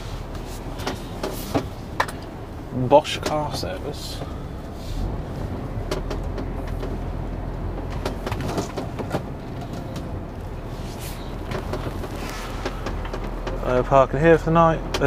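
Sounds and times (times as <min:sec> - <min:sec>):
lorry diesel engine running: 0:00.0 - 0:15.0.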